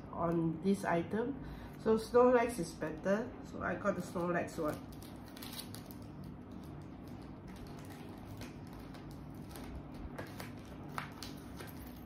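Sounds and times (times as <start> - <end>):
plastic bag crinkling: 4.5 - 12.0.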